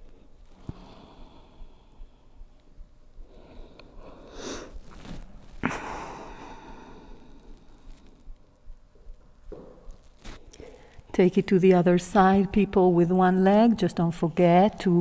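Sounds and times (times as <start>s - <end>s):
person exhaling softly: 5.6s - 8.1s.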